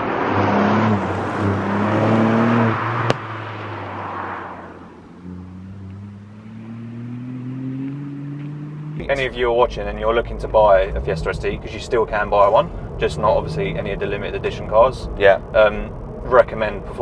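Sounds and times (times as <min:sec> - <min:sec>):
car passing on wet road: 0:00.0 - 0:09.0
car engine accelerating: 0:00.0 - 0:17.0.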